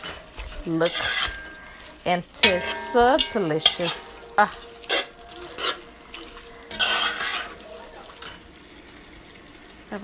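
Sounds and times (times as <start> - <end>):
metal spoon scraping metal pot: 0.8 - 1.7, 2.4 - 8.4.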